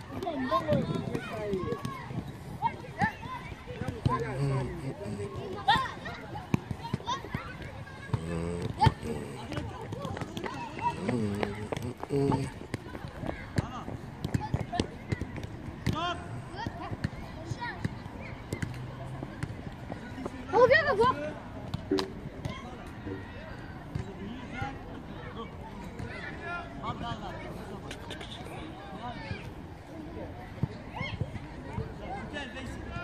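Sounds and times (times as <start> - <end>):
footballs being kicked: 0.1 - 4.3, 5.0 - 17.2.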